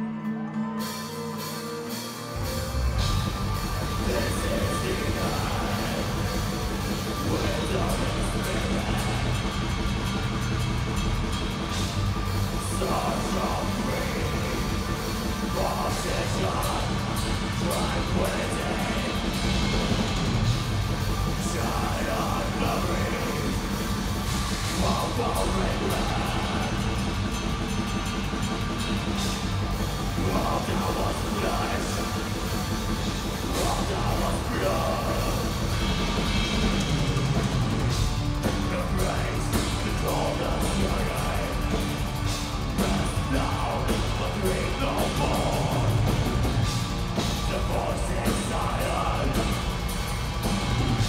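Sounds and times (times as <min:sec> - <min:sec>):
distorted electric guitars: 0:00.0 - 0:51.0
live metal band playing: 0:00.0 - 0:51.0
fast drumming with cymbals: 0:01.4 - 0:51.0.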